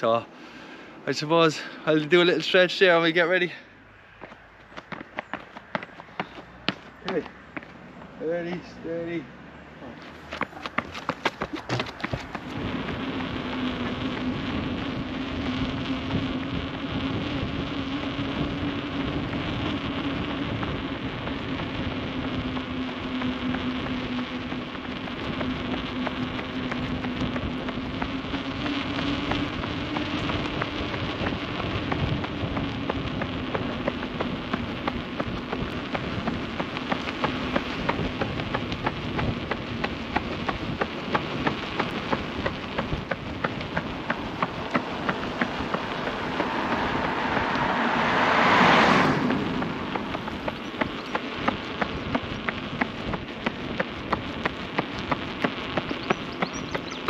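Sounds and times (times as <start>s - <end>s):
road noise: 0.0s - 57.0s
low motor hum: 9.2s - 57.0s
wind rush: 10.2s - 57.0s
sharp ticks: 17.9s - 57.0s.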